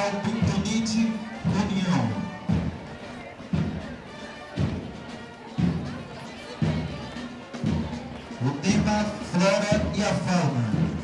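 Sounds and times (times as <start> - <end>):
low heavy drum beat: 0.0 - 11.0
parade music: 0.0 - 11.0.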